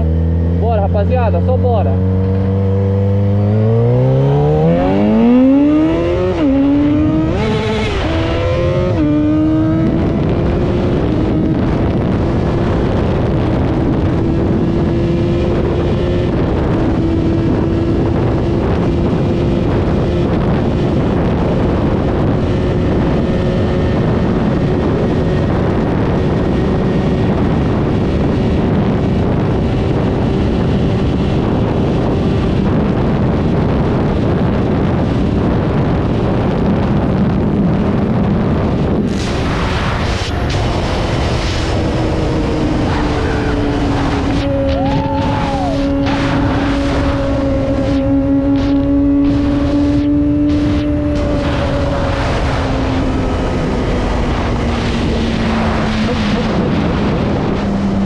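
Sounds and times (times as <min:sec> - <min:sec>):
motorcycle engine revving: 0:00.0 - 0:58.0
wind noise on microphone: 0:00.0 - 0:58.0.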